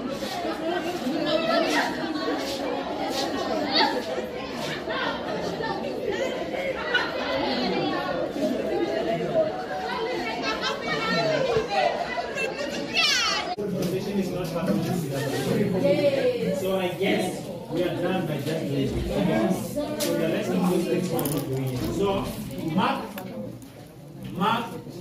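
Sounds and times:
chatter of many voices: 0:00.0 - 0:25.0.

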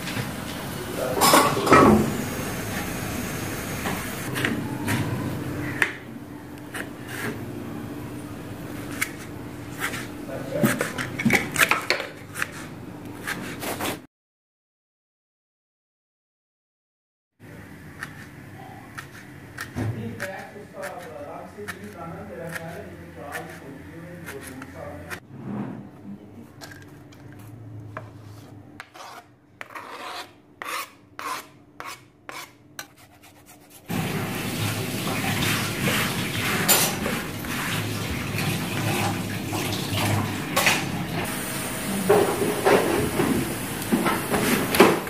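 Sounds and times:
knife cutting tomato on board: 0:18.9 - 0:25.2, 0:28.8 - 0:33.9.

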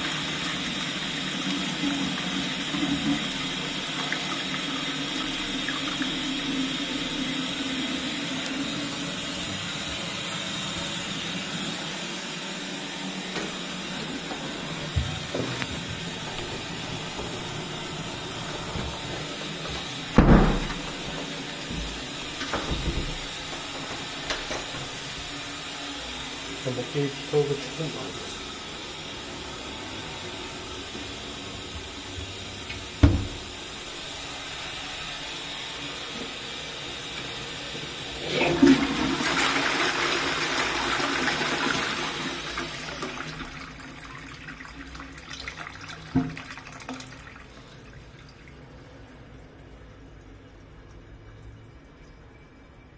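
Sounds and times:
toilet flushing: 0:00.0 - 0:52.9
thump: 0:20.2 - 0:20.8, 0:33.0 - 0:33.4.

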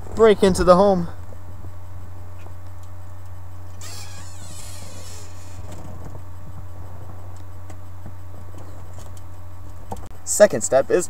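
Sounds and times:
steady low hum: 0:00.0 - 0:11.0
rustling scraping noise: 0:03.8 - 0:07.2.

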